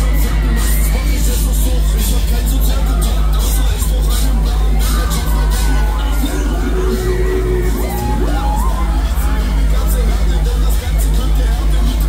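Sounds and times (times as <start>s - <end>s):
riders screaming and whooping: 0.0s - 11.3s
loud ride music with heavy bass: 0.0s - 12.0s.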